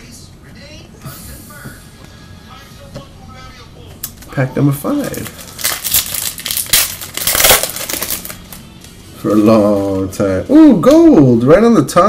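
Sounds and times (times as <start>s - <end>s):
foil wrapper tearing and crinkling: 4.9s - 8.6s.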